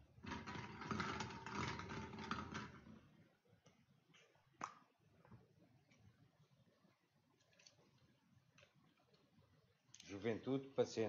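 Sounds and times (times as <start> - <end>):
plastic balls rattling in glass bowl: 0.0 - 3.0.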